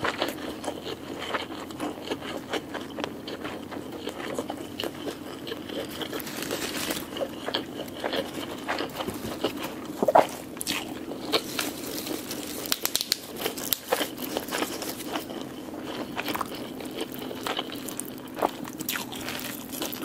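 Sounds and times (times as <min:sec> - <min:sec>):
close chewing with mouth clicks: 0:00.0 - 0:20.0
lettuce leaves crinkling: 0:05.7 - 0:18.2.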